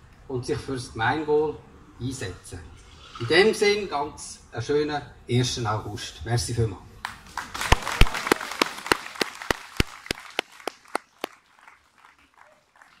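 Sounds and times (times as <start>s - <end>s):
audience applauding: 7.0s - 13.0s.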